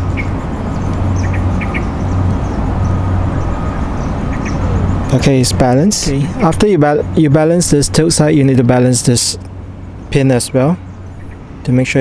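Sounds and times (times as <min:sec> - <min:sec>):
bird chirps: 0:00.0 - 0:05.2, 0:10.8 - 0:11.8
steady low rumble: 0:00.0 - 0:12.0.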